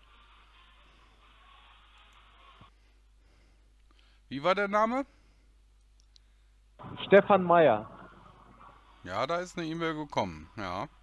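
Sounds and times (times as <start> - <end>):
man talking: 7.0 - 7.9, 9.0 - 11.0.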